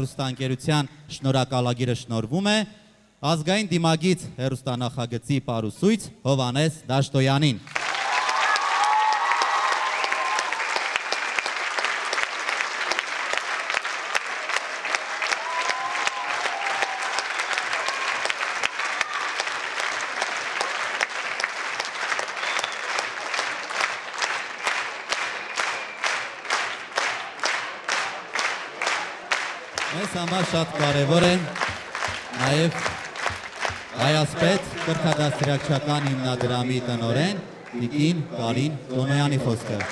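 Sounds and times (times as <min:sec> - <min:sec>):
rhythmic clapping in unison: 0:07.7 - 0:36.9, 0:39.6 - 0:39.9
audience applause: 0:07.7 - 0:37.0, 0:39.4 - 0:39.9.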